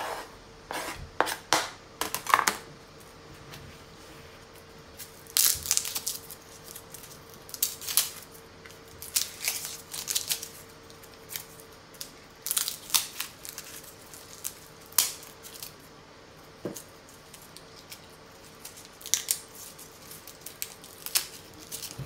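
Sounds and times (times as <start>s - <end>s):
garlic skin crackling: 5.0s - 15.8s, 16.8s - 22.0s.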